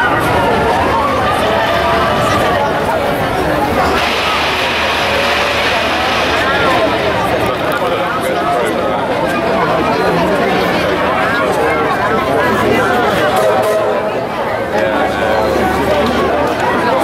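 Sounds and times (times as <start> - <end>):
crowd chatter: 0.0 - 17.0
hiss: 4.0 - 7.9.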